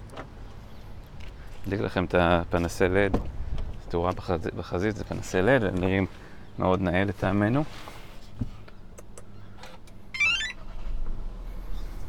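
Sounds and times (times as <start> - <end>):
electronic chime tones rising: 10.2 - 10.6.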